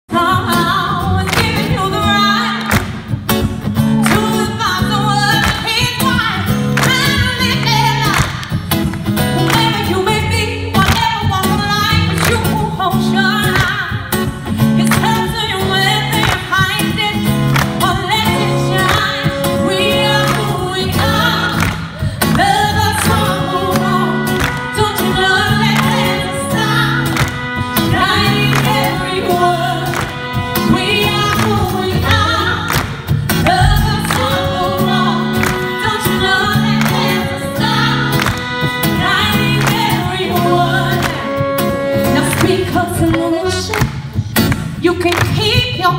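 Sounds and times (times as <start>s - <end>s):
woman singing: 0.1s - 2.9s, 3.9s - 8.6s, 9.3s - 45.9s
live band music: 0.1s - 45.9s
horns: 17.0s - 21.6s, 22.4s - 32.8s, 33.4s - 43.8s
held bass notes: 17.2s - 43.7s
drum hits: 33.5s - 34.7s.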